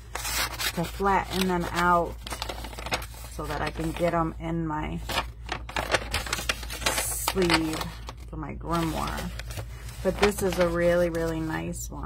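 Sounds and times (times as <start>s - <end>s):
paper scroll rustling and crackling: 0.0s - 12.0s.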